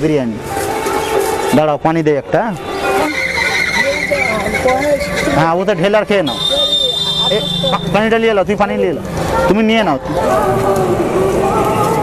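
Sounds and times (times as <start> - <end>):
surrounding talk: 0.0 - 12.0
man speaking indistinctly: 1.5 - 10.1.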